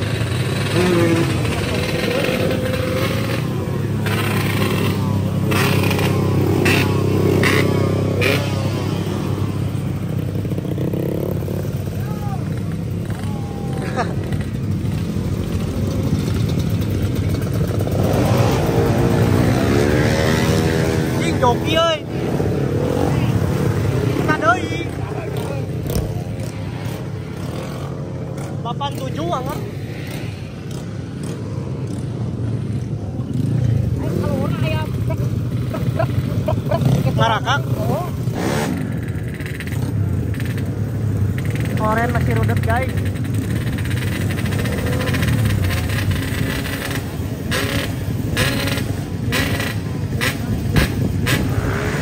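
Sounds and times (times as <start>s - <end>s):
motorcycle engine revving: 0.0s - 52.0s
motorcycle engines idling: 0.0s - 52.0s
people talking: 12.0s - 12.5s.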